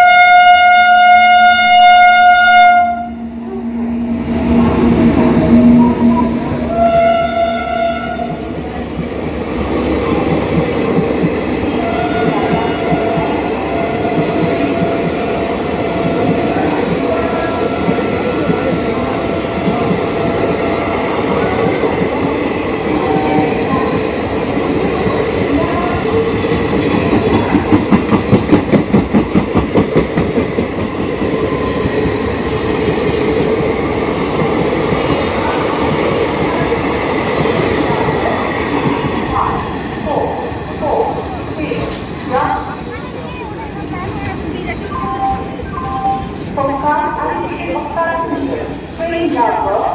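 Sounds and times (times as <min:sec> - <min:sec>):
faint train horn: 0:00.0 - 0:03.8, 0:05.5 - 0:08.4, 0:11.8 - 0:15.0
train wheels rumbling on rail: 0:00.0 - 0:49.9
clickety-clack over rail joints: 0:08.2 - 0:22.4, 0:24.7 - 0:40.4, 0:41.8 - 0:49.9.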